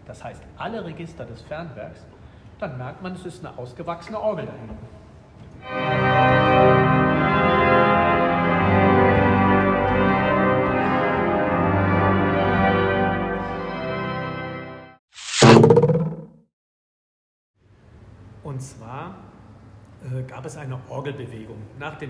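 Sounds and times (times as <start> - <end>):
distant pipe organ chords: 5.6 - 14.9.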